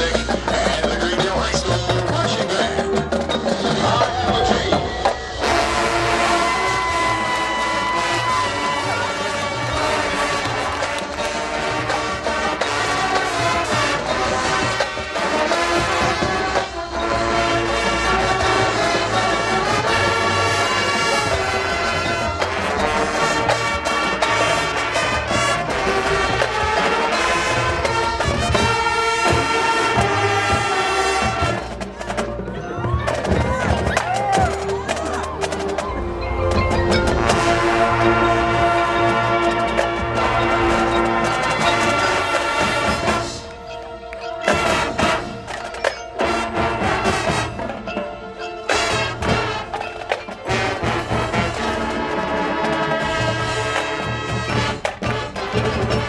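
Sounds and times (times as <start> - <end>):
marching band playing: 0.0 - 56.0.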